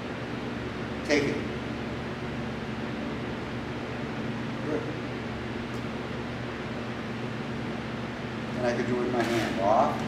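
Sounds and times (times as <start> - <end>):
space heater fan hum: 0.0 - 10.0.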